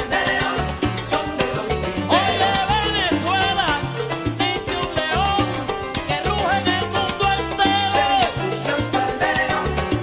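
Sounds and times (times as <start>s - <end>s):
bass line: 0.0s - 10.0s
percussion: 0.0s - 10.0s.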